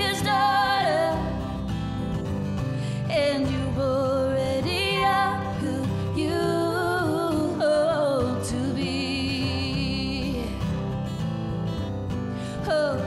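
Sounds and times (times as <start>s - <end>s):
woman singing with vibrato: 0.0s - 1.6s, 3.0s - 10.7s, 12.6s - 13.0s
acoustic guitars playing: 0.0s - 13.0s.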